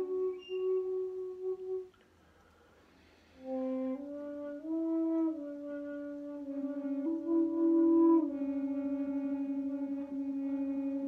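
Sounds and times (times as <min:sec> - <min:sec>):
bamboo flutes playing held notes: 0:00.0 - 0:02.0, 0:03.3 - 0:11.0.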